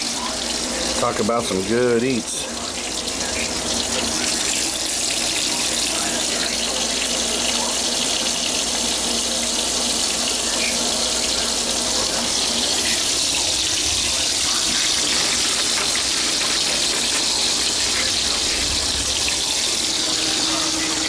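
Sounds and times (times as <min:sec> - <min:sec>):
bacon sizzling in a frying pan: 0:00.0 - 0:21.0.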